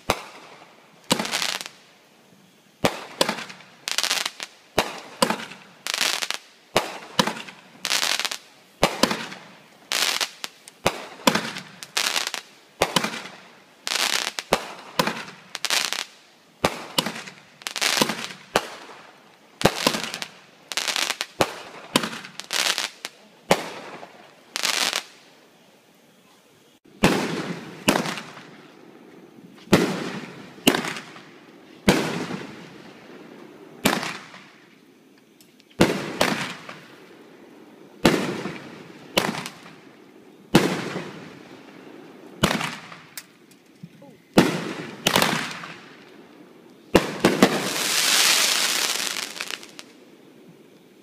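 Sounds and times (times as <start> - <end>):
fireworks bursting with echo: 0.0 - 2.0, 2.7 - 25.5, 26.7 - 50.7
dense hiss: 0.0 - 51.0.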